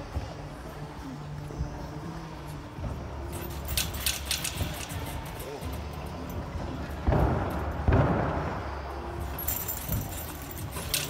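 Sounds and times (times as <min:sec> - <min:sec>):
metal clinking and jangling: 0:03.2 - 0:07.8, 0:09.1 - 0:11.0.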